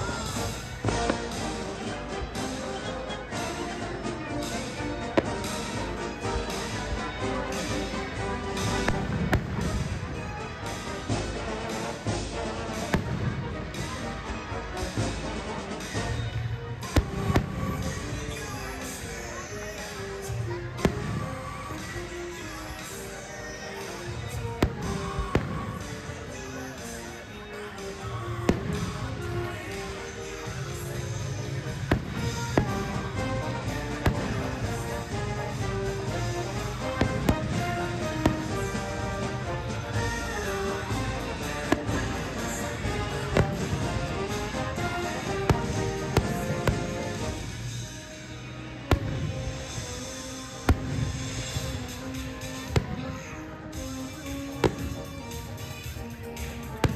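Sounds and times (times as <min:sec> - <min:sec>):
music: 0:00.0 - 0:56.9
firework shells bursting: 0:48.9 - 0:56.0.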